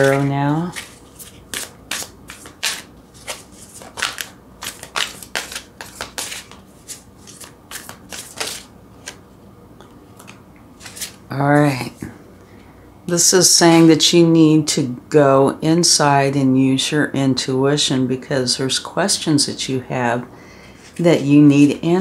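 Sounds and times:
cards shuffling: 0.0 - 9.2, 10.2 - 11.2.

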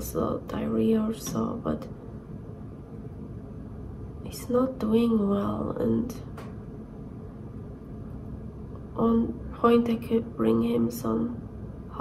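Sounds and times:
low indoor rumble: 0.0 - 12.0.

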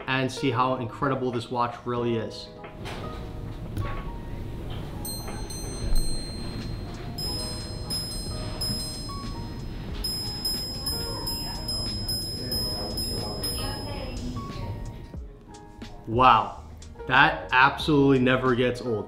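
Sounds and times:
watch gongs chiming: 3.1 - 15.2.

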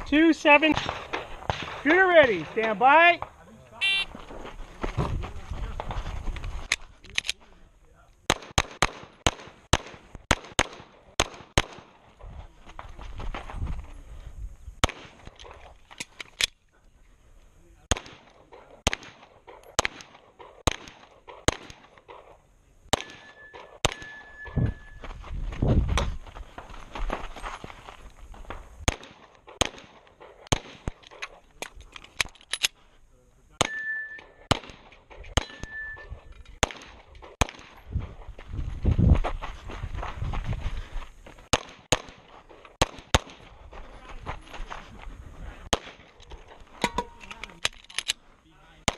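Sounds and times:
pistol shots: 0.6 - 2.6, 8.3 - 11.9, 17.9 - 24.6, 28.8 - 31.3, 33.6 - 37.8, 41.5 - 43.5, 45.7 - 46.2.

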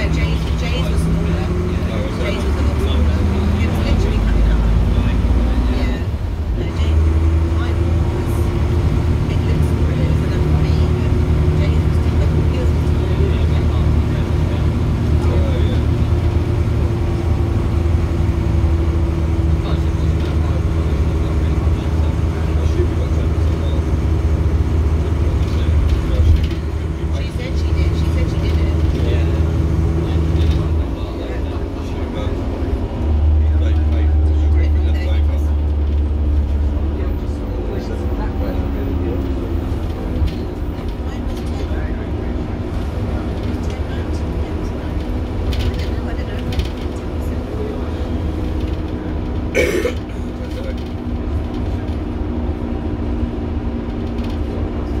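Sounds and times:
bus diesel engine drone: 0.0 - 55.0
engine whine: 0.0 - 55.0.

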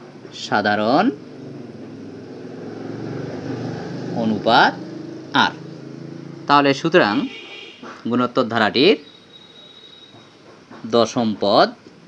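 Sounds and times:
low engine-like hum: 0.4 - 6.5.

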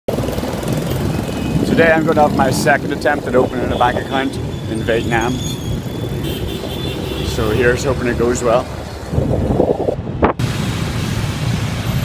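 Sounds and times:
motorbike and scooter traffic: 0.1 - 12.0
man's voice: 1.7 - 5.4, 7.3 - 8.7.

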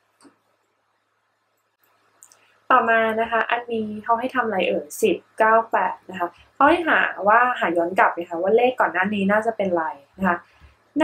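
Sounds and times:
woman speaking: 2.7 - 11.0.

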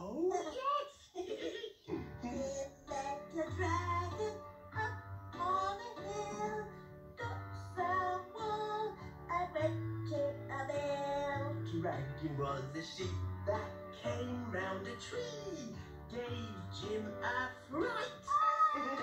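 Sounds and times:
children's song: 1.5 - 19.0.

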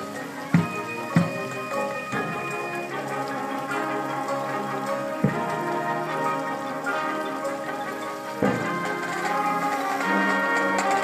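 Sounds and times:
marching band chords: 0.0 - 11.0.

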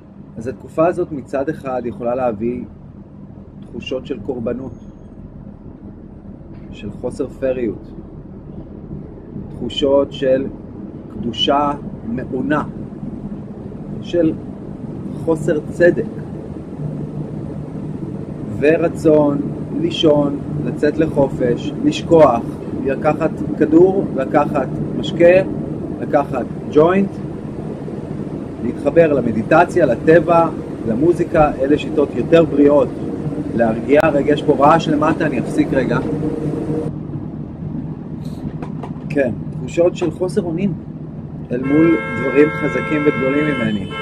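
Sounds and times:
low background rumble: 0.0 - 42.9
faint constant hum: 0.0 - 44.0.

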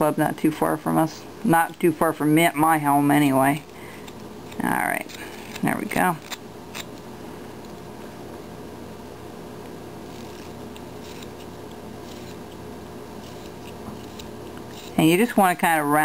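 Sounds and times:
steady low hum: 0.0 - 16.0
carving knife scraping wood: 6.2 - 6.9, 10.1 - 15.0.

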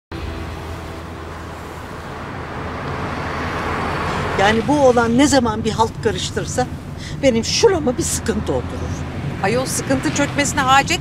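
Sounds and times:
taxi engine and tyre noise passing: 0.1 - 11.0.

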